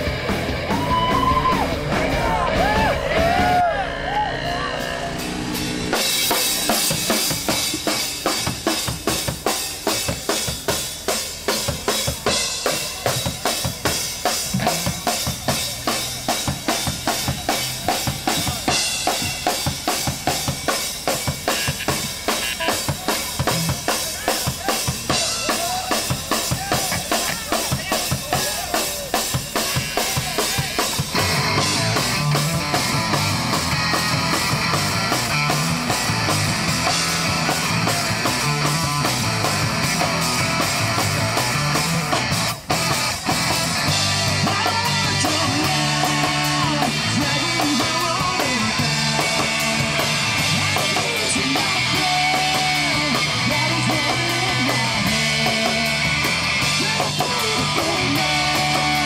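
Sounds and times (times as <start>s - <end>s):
drum kit beat: 0.0s - 59.0s
rock band playing: 0.0s - 59.0s.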